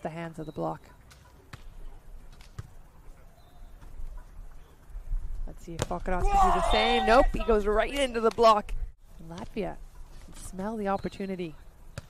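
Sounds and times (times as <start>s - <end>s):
open-air court ambience: 0.0s - 12.0s.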